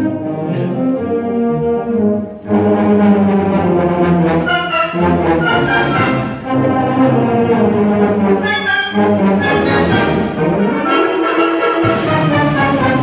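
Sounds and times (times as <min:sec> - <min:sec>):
concert band playing: 0:00.0 - 0:13.0.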